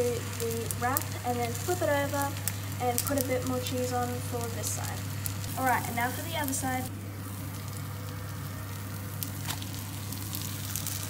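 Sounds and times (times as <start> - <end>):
cheese sizzling in a frying pan: 0.0 - 11.0.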